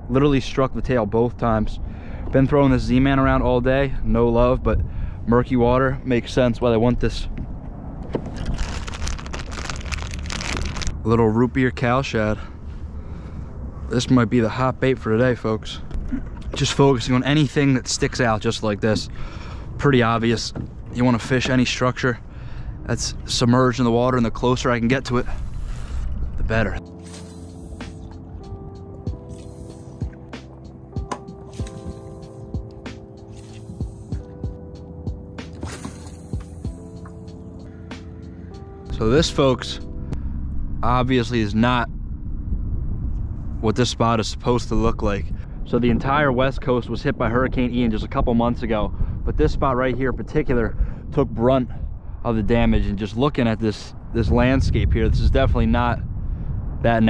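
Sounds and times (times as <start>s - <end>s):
wind rumble on microphone: 0.0s - 26.9s, 27.6s - 30.4s, 38.9s - 57.0s
plastic bag crinkling: 8.3s - 10.9s
background music with sustained chords: 26.8s - 41.1s.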